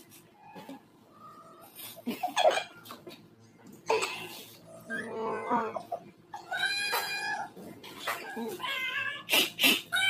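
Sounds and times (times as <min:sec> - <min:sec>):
cat-like wailing calls: 0:04.8 - 0:10.0.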